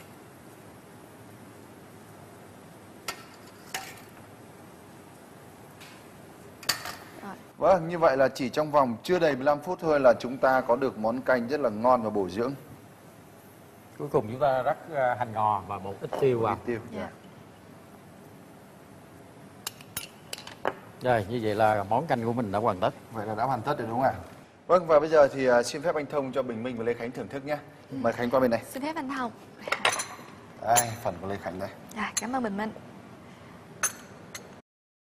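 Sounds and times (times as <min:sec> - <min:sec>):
spoons clinking on ceramic bowls: 0:29.7 - 0:31.0.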